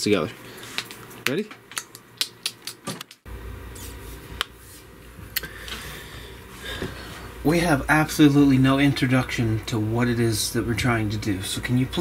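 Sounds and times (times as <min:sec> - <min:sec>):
steady low hum: 0:03.3 - 0:12.0.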